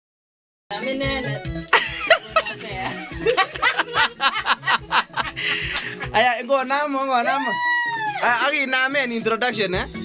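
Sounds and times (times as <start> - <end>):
backing track with low beat: 0.7 - 10.0.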